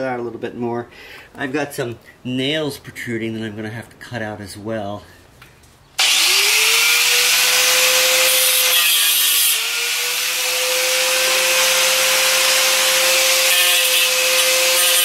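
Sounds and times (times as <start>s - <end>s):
power tool whining: 6.0s - 15.0s.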